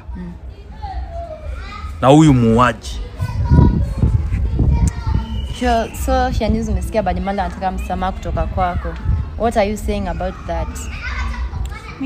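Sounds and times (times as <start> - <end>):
indistinct talk: 0.0 - 12.0.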